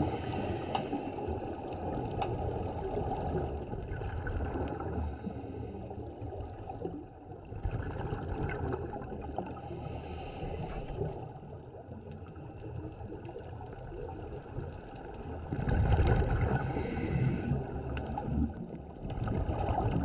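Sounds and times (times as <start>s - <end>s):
scuba regulator breathing: 0.0s - 1.5s, 4.9s - 6.0s, 9.6s - 11.2s, 16.5s - 18.3s
watery rumble: 0.0s - 20.0s
exhaled bubbles rushing: 1.2s - 5.2s, 6.1s - 9.9s, 10.8s - 20.0s
crackling clicks: 11.5s - 16.5s, 17.5s - 18.5s.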